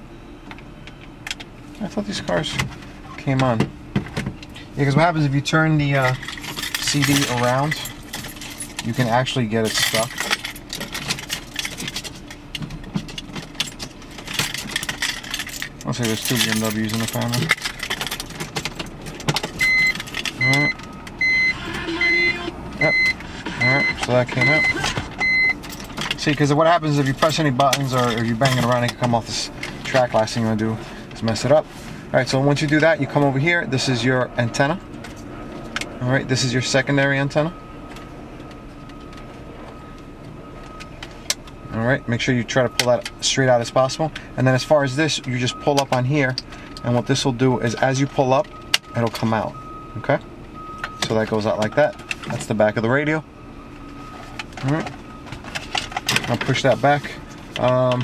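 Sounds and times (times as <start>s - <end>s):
low background hum: 0.0s - 58.0s
car stereo unit clicking and rattling: 0.5s - 31.6s, 32.2s - 53.2s, 53.9s - 58.0s.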